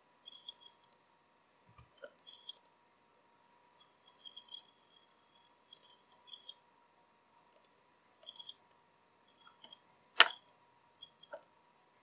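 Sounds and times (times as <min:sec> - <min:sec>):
computer mouse clicks: 0:00.3 - 0:01.0, 0:01.7 - 0:02.8, 0:05.7 - 0:06.6, 0:07.5 - 0:08.6, 0:09.3 - 0:11.5.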